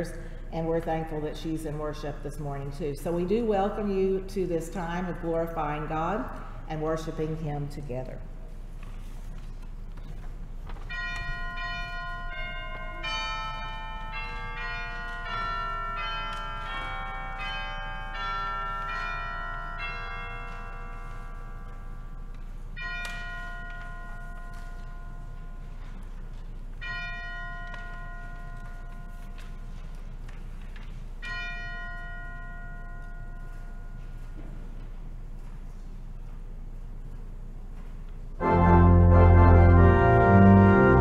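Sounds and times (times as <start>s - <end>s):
steady low hum: 0.0s - 41.0s
bells ringing: 10.8s - 34.6s
struck chords ringing out: 38.4s - 41.0s.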